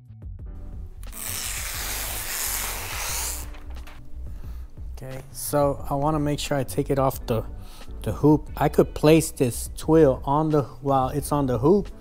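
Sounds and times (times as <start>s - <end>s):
quiet background music: 0.4s - 12.0s.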